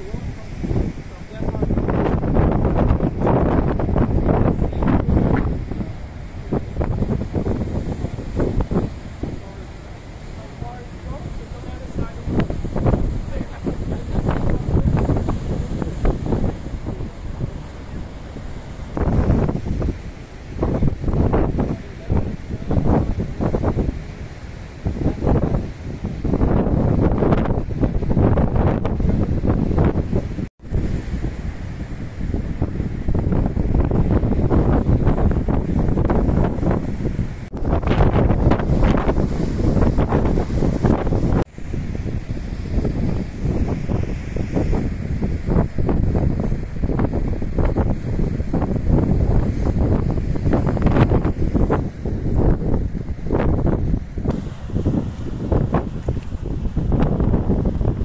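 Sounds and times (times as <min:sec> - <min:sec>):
surf breaking on shore: 0:00.0 - 0:58.0
wind buffeting microphone: 0:00.0 - 0:58.0.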